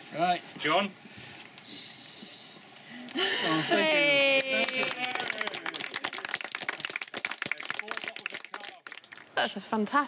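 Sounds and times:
voices: 1.7s - 8.8s
people clapping: 4.0s - 9.8s.

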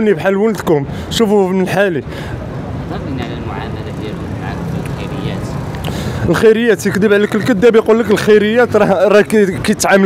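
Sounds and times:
road traffic: 0.0s - 10.0s
faint voices: 2.9s - 10.0s.

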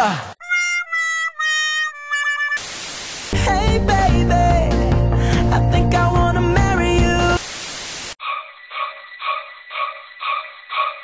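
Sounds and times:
music: 0.4s - 2.6s, 3.4s - 7.4s
static hiss: 2.6s - 3.4s, 7.2s - 8.2s.

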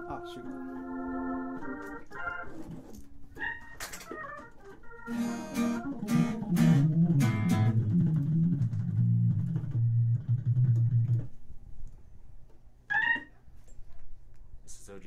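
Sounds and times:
low organ bass notes: 0.0s - 2.9s, 4.2s - 11.4s.

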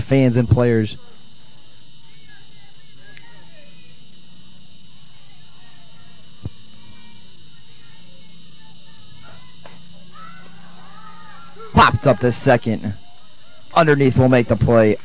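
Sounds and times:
field background noise: 0.0s - 15.0s
faint distant voices: 0.6s - 15.0s.

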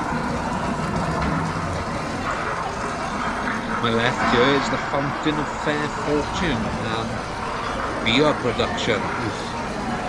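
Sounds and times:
echoing street din: 0.0s - 10.0s
low hum: 0.0s - 10.0s.

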